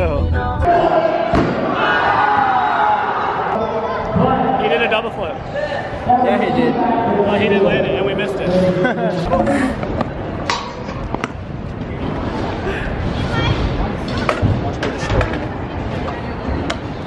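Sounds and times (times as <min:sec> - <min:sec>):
background chatter: 0:03.3 - 0:17.0.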